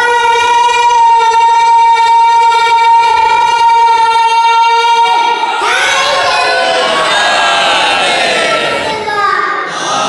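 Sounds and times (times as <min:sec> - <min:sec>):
boy singing long high note: 0:00.0 - 0:10.0.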